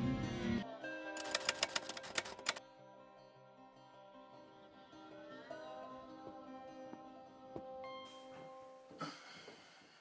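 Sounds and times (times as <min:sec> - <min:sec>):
typewriter key clacks: 0:01.2 - 0:02.6.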